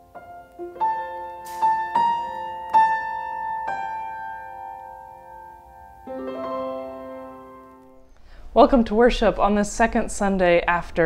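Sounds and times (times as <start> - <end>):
piano chord ringing: 0.0 - 8.2.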